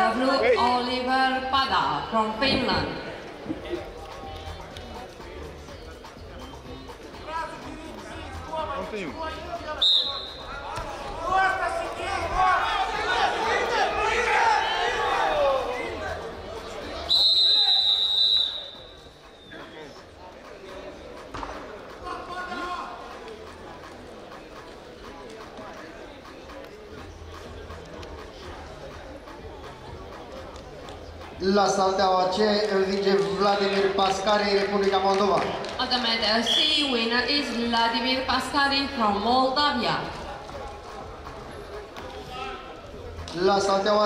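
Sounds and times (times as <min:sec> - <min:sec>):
voices echoing in a hall: 0:00.0 - 0:44.0
shouting voices echoing: 0:09.3 - 0:16.2
referee's whistle blast: 0:09.8 - 0:10.6, 0:17.1 - 0:19.6.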